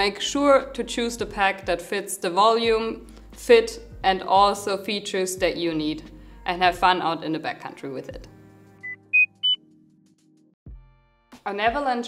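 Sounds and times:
rising electronic beeps: 8.8s - 9.6s.

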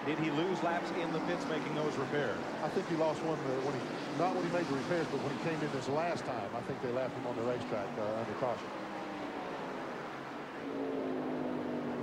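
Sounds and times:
race truck engines at speed: 0.0s - 12.0s.

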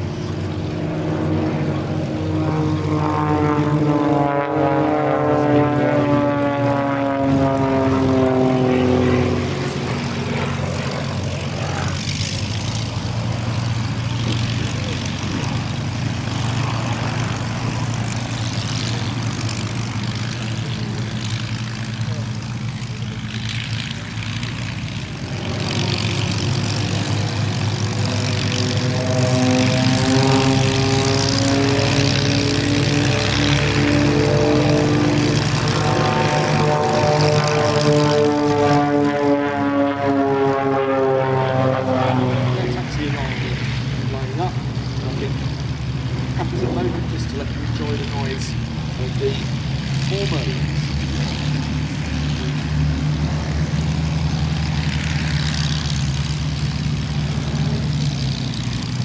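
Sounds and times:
piston aircraft engines taxiing: 0.0s - 59.0s.

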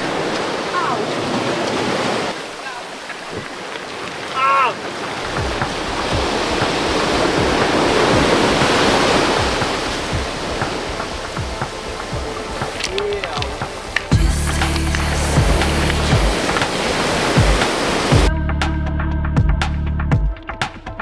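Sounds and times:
surf washing up pebble beach: 0.0s - 18.3s
low regular thump: 5.2s - 12.7s.

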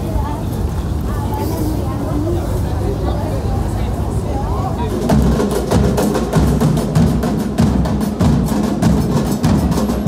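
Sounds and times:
low drum thuds: 5.0s - 10.0s.

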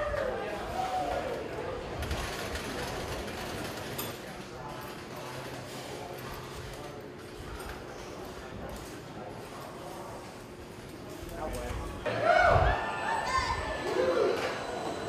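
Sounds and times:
indistinct chatter of riders: 0.0s - 15.0s.

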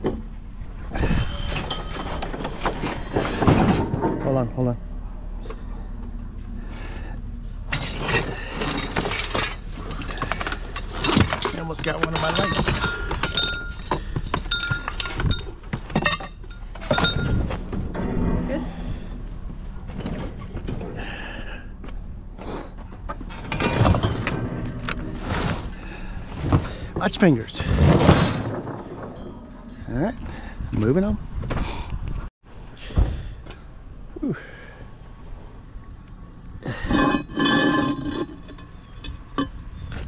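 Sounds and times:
scrap metal clanking and rattling: 1.0s - 4.8s, 6.6s - 21.1s, 22.7s - 30.5s, 35.8s - 40.0s
metal pieces ringing: 7.7s - 17.4s.

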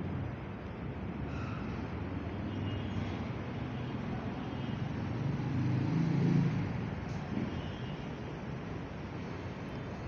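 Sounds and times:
low rumble of traffic: 0.0s - 10.0s
vehicle passing: 4.8s - 7.0s.

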